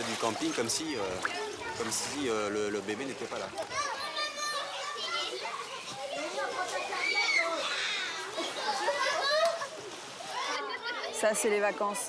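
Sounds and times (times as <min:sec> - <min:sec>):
children shouting and playing: 0:01.1 - 0:02.2, 0:03.0 - 0:12.0.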